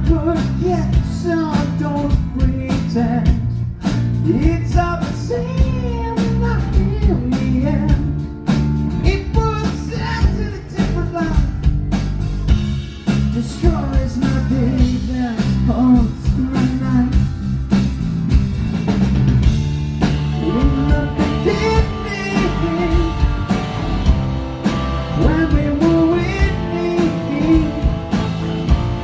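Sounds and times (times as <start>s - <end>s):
male lead vocal singing: 0.0s - 8.2s, 9.0s - 11.7s, 13.3s - 17.3s, 20.4s - 23.6s, 25.1s - 28.2s
bass guitar: 0.0s - 29.0s
drums: 0.0s - 29.0s
electric guitar: 0.0s - 29.0s.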